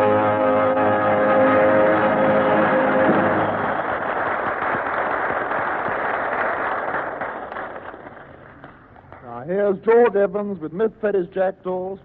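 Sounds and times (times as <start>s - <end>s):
audience applauding: 0.4s - 9.4s.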